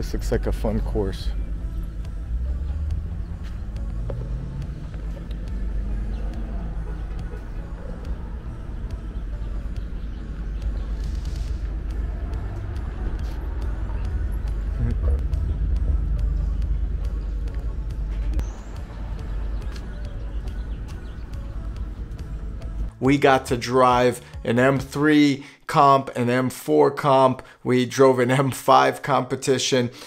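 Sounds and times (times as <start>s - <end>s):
car engine revving: 0.0s - 22.9s
distant car engines running: 0.0s - 22.9s
steady low rumble: 0.0s - 23.0s.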